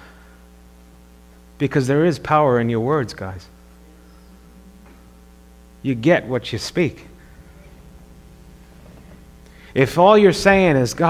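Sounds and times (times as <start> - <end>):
low electrical mains hum: 0.0 - 11.0
man's voice: 5.8 - 7.2, 9.6 - 11.0.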